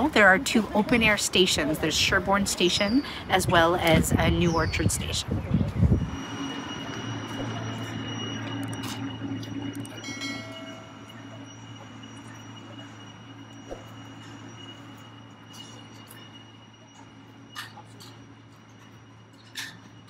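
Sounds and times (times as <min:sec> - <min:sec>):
faint high whine: 0:00.0 - 0:20.0
low mechanical hum: 0:00.0 - 0:20.0.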